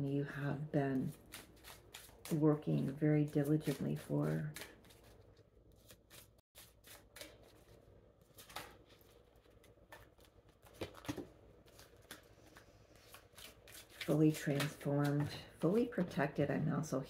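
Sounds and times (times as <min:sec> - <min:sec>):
cards being shuffled: 0:03.4 - 0:15.3.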